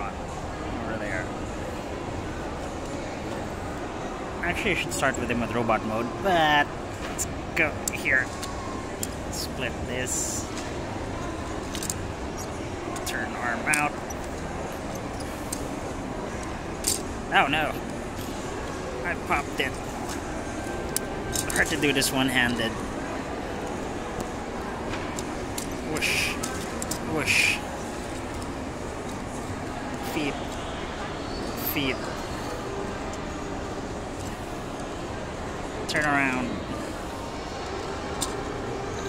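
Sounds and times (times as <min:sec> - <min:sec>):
steady background noise: 0:00.0 - 0:39.0.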